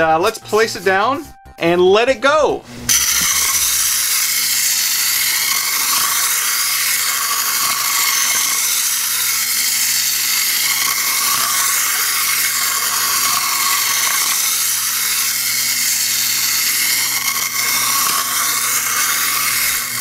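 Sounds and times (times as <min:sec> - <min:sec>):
clockwork toy car motor whirring: 0:02.9 - 0:20.0.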